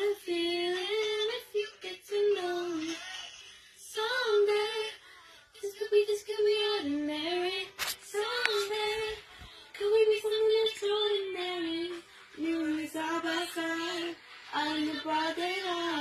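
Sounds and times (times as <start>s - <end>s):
girl singing a pop song: 0.0s - 16.0s.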